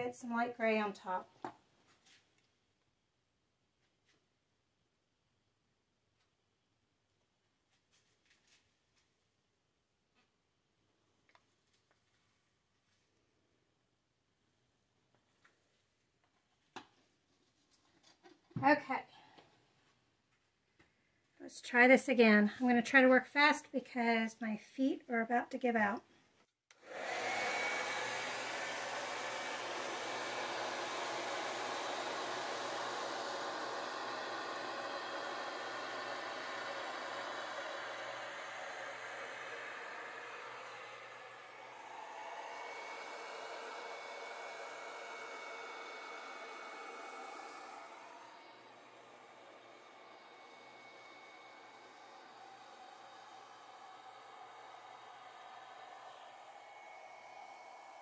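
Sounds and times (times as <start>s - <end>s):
hair dryer blowing: 26.7s - 58.0s.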